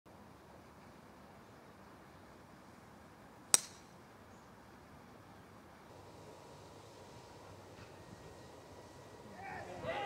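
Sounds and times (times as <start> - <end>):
golf club striking ball: 3.5 - 3.9.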